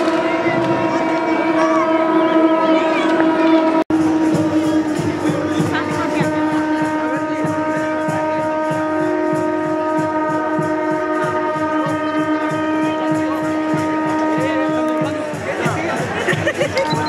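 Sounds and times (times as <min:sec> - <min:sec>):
low rhythmic beat: 0:00.0 - 0:17.0
sustained horn-like tones: 0:00.0 - 0:17.0.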